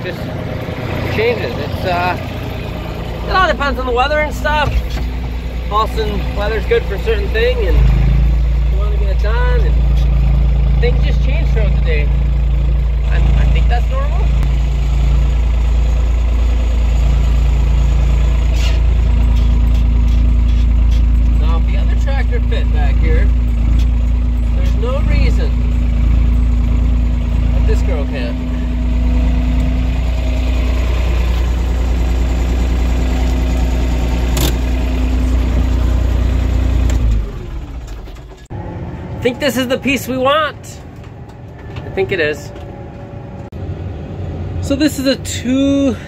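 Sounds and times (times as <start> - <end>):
diesel tractor engine running: 0.0 - 46.0.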